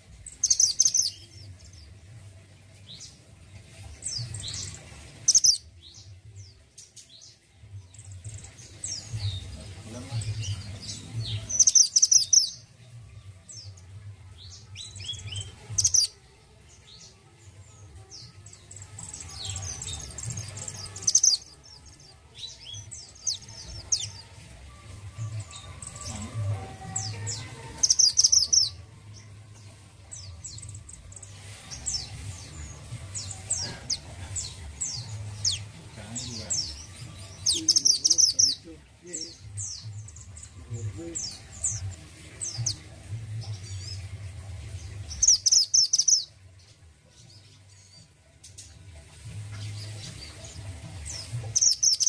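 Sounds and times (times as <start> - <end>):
bird chirping: 0.0 - 2.0, 2.7 - 48.8, 49.4 - 52.0.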